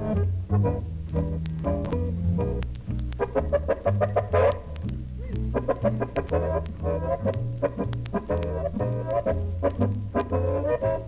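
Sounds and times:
small jazz combo playing swing: 0.0 - 11.0.

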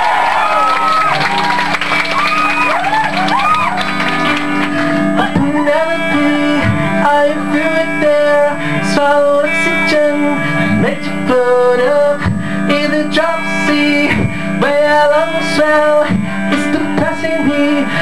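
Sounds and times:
strummed guitar chords: 1.2 - 18.0.

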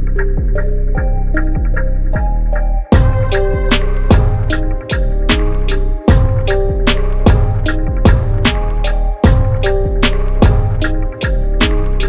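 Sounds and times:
music with steady drum beat: 0.0 - 12.0.

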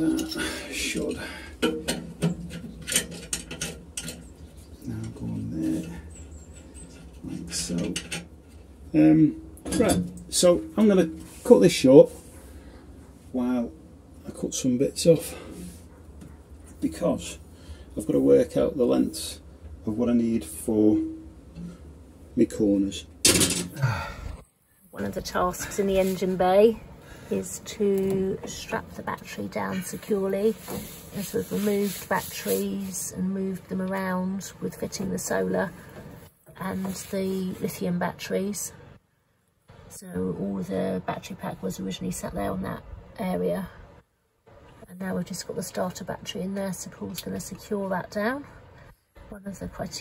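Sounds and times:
small metal clicks and scrapes: 1.6 - 5.2
man sighing: 23.7 - 24.4.

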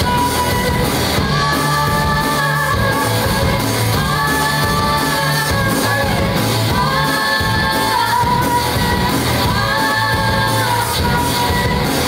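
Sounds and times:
live rock band playing: 0.0 - 12.0
person singing: 0.0 - 12.0.

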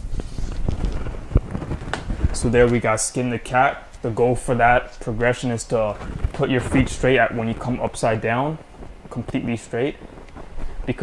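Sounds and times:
clothing rustle: 0.0 - 11.0.

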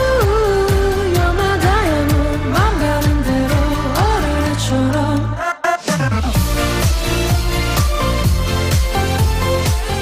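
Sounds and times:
electric bass: 0.0 - 5.4, 6.2 - 10.0
guitar: 0.0 - 5.4, 6.3 - 10.0
steady drum beat: 6.0 - 10.0.

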